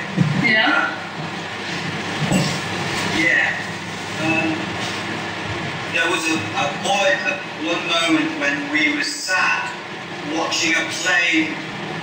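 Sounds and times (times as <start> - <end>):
electric fans rushing: 0.0 - 12.0.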